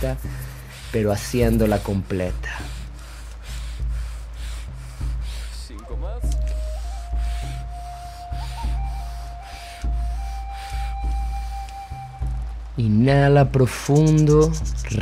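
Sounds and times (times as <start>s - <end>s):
man breathing fast and deep: 0.0s - 12.1s
background music with low pulse: 0.0s - 15.0s.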